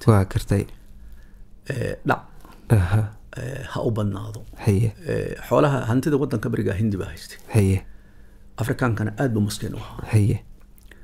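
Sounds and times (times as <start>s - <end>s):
man speaking: 0.0s - 0.8s, 1.6s - 7.9s, 8.6s - 10.5s.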